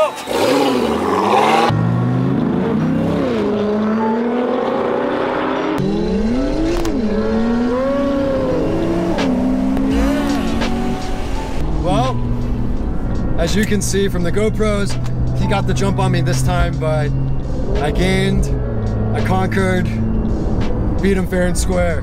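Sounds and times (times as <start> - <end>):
sports car engines accelerating: 0.2 - 22.0.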